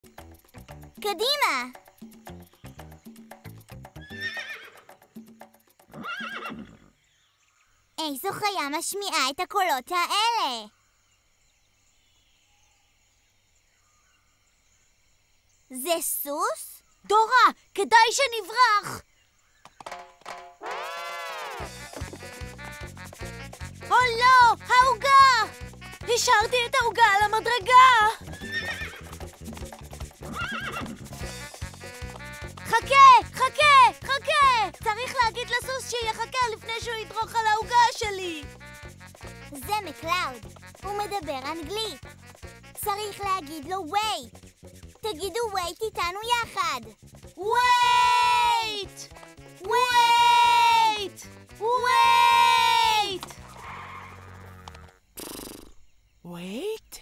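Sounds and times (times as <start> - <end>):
rhythmic children's music: 0.0 - 4.2, 21.6 - 47.4, 48.3 - 53.2
horse neighing: 4.0 - 4.9, 5.9 - 7.0, 20.6 - 22.2, 28.2 - 29.3, 30.2 - 32.0, 53.2 - 55.8.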